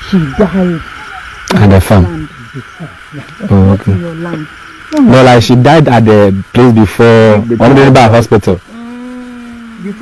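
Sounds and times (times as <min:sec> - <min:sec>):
men talking: 0:00.0 - 0:08.8
insects droning: 0:00.0 - 0:10.0.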